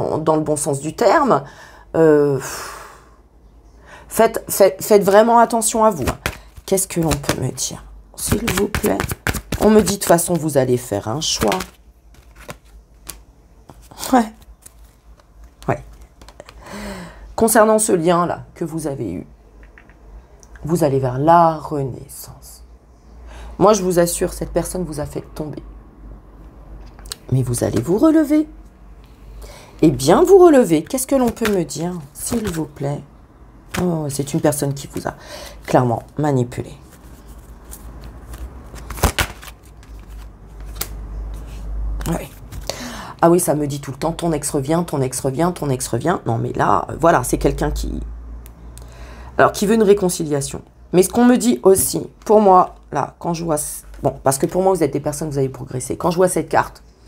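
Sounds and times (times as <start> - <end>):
cards being shuffled: 6.0 - 7.6, 8.3 - 10.5, 11.2 - 16.6, 30.8 - 32.8, 33.7 - 35.1, 36.8 - 42.7
playing cards flicking: 8.3 - 10.2, 11.4 - 13.8, 31.2 - 31.6, 32.3 - 32.6, 37.6 - 41.0.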